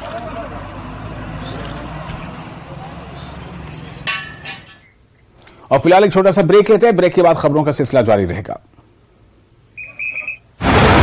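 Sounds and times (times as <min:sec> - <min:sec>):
short high electronic beeps: 0:09.8 - 0:10.4
loud explosive rush: 0:10.6 - 0:11.0.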